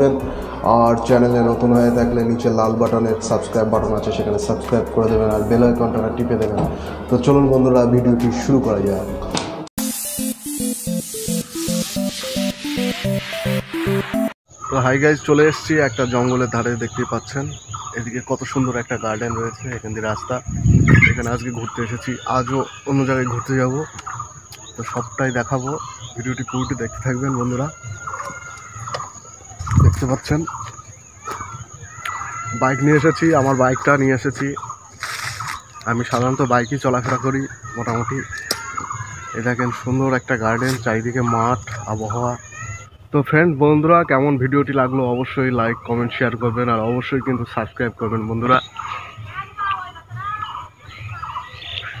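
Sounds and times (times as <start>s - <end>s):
man's voice: 0.0s - 9.4s
birds chirping: 0.0s - 52.0s
chickens clucking: 15.4s - 42.4s, 45.6s - 52.0s.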